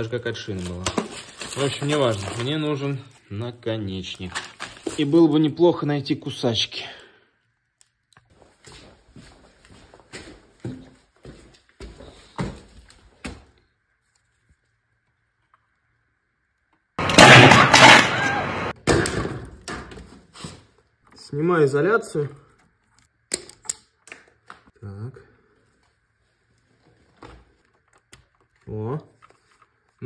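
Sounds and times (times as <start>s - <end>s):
rummaging through plastic bags: 0.0s - 3.3s, 4.0s - 5.3s
loud rough clattering scraping: 17.0s - 18.8s.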